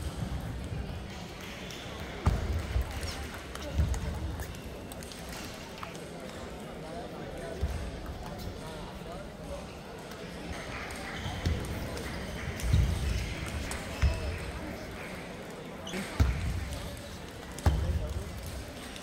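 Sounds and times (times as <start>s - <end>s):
many people talking: 0.0s - 19.0s.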